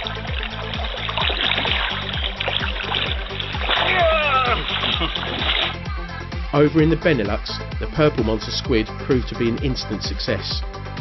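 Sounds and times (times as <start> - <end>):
splashing rushing water: 0.0 - 5.9
electronic music with pulsing beat: 0.0 - 10.8.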